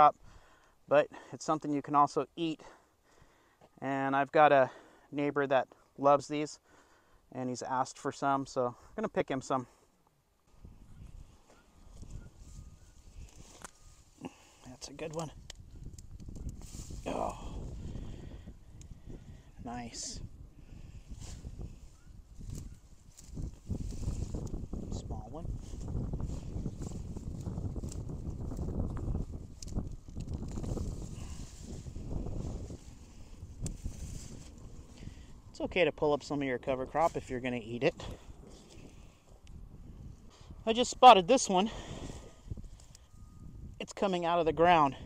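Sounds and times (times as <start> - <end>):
leafy plants rustling: 10.5 - 44.2.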